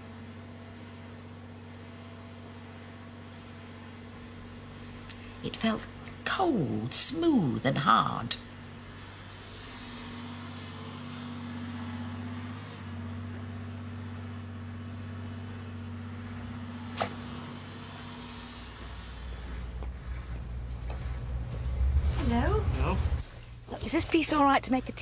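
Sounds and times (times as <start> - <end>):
heavy machine engine running: 0.0 - 25.0
sharp click: 16.9 - 17.2.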